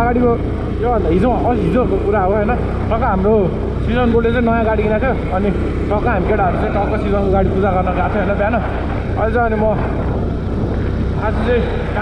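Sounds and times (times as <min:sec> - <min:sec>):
man speaking: 0:00.0 - 0:10.0, 0:11.2 - 0:12.0
motorcycle running: 0:00.0 - 0:12.0
wind rumble: 0:00.0 - 0:12.0.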